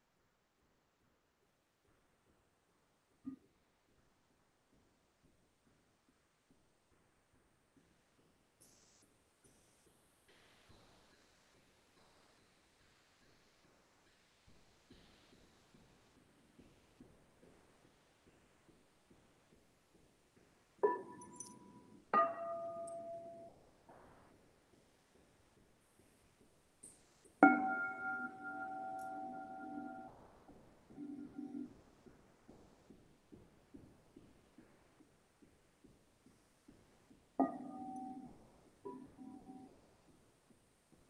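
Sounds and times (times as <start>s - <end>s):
faint light clinks: 20.8s - 23.5s
singing bowls ringing: 27.4s - 30.1s.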